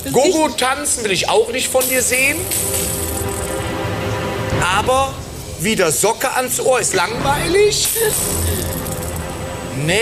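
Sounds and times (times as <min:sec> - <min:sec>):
background music: 0:00.0 - 0:10.0
prize wheel clicking: 0:01.8 - 0:03.6.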